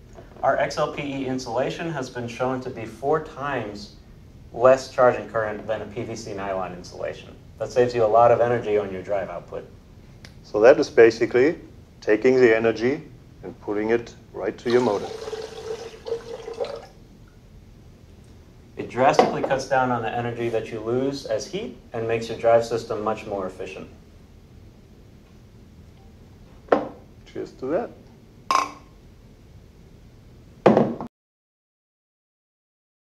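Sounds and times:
liquid trickling into funnel: 0:14.6 - 0:17.0
glass set down on table knock: 0:26.7 - 0:27.0, 0:30.7 - 0:31.1.

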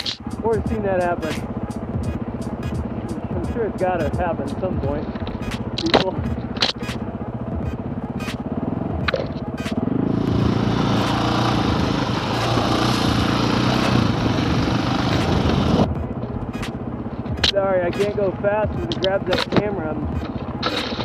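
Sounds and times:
dirt bike engine: 0:00.0 - 0:21.0.

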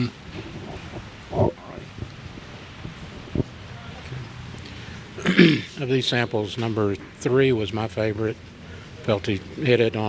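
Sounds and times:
person murmuring: 0:00.0 - 0:01.9.

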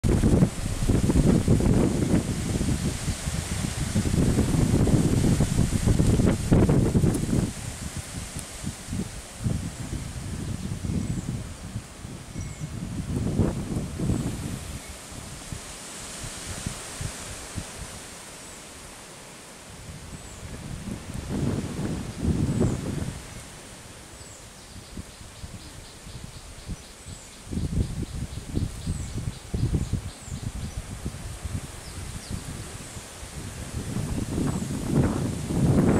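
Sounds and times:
wind buffeting microphone: 0:00.0 - 0:18.0, 0:19.8 - 0:23.8, 0:24.7 - 0:35.9
leaves rustling: 0:00.0 - 0:35.9.

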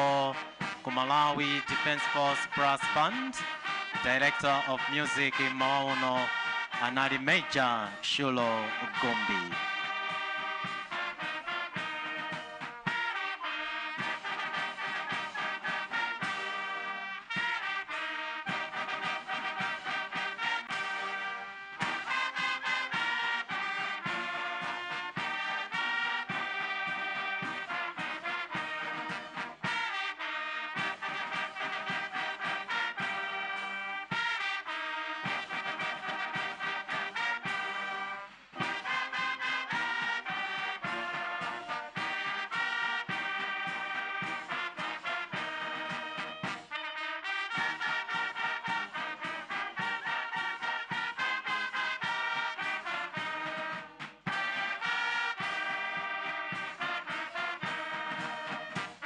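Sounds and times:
brass band playing: 0:00.0 - 0:59.0.

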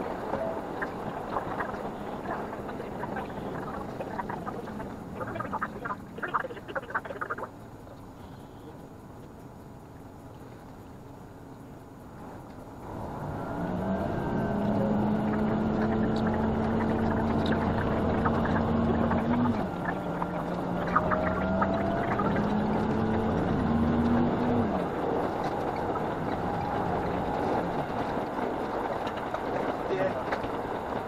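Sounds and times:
diesel train engine rumble: 0:00.0 - 0:31.0.

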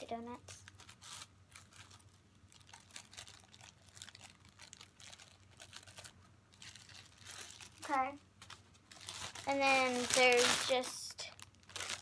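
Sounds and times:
plastic packaging crinkling: 0:00.4 - 0:12.0.

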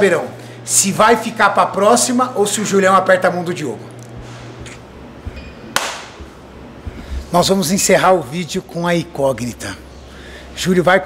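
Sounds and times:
hand slap swish: 0:05.7 - 0:06.3.

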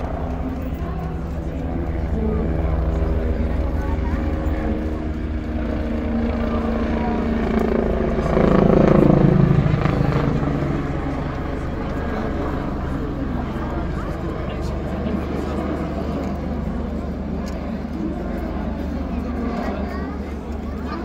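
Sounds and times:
helicopter rotor beat: 0:00.0 - 0:21.0.

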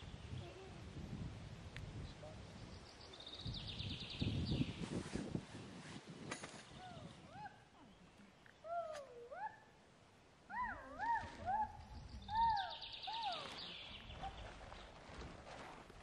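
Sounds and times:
animal calls rising and falling: 0:10.5 - 0:13.8.

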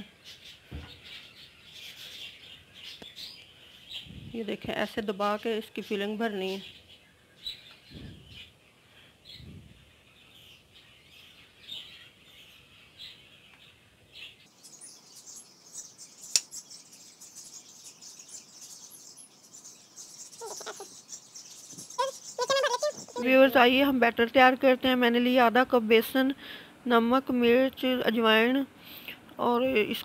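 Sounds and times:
faint bird chirping: 0:00.0 - 0:30.0
sharp click: 0:16.3 - 0:16.5.

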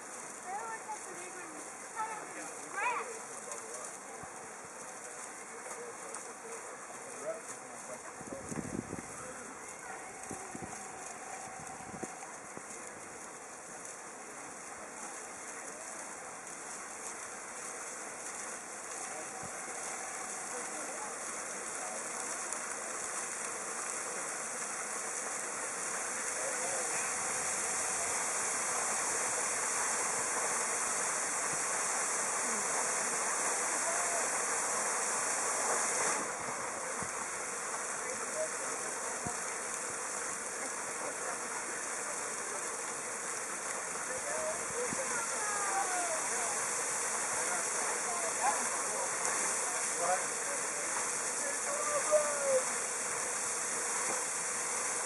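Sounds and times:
water jets splashing on rock: 0:00.0 - 0:55.0.

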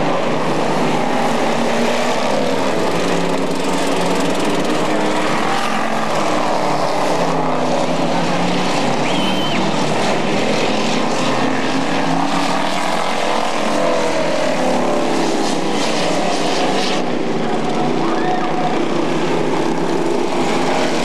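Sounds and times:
race car engines passing: 0:00.0 - 0:21.0.

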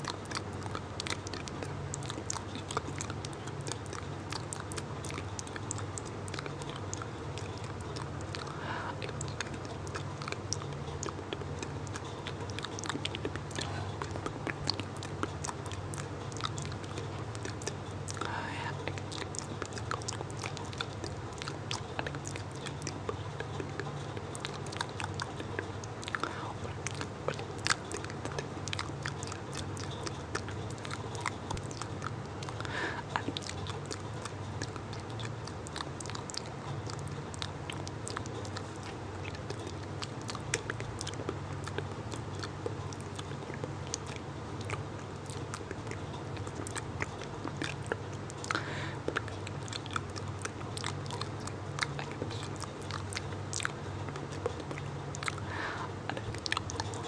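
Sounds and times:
steady low hum: 0:00.0 - 0:57.0
wet mouth clicks and lip smacks: 0:00.0 - 0:57.0
person whispering: 0:18.2 - 0:18.8, 0:26.3 - 0:26.8.

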